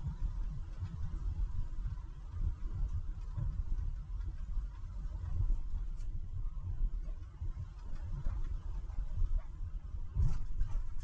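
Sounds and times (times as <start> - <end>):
faint steady hum: 0.0 - 11.0
truck engine and tyre rumble: 0.0 - 11.0.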